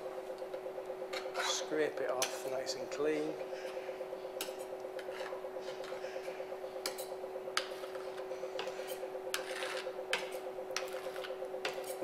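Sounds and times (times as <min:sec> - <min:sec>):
machine humming with regular pulse: 0:00.0 - 0:12.0
palette knife scraping metal mould: 0:07.6 - 0:12.0.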